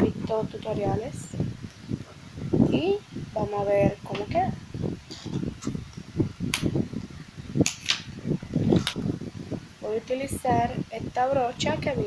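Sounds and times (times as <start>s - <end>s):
handling noise rumbling: 0.0s - 12.0s.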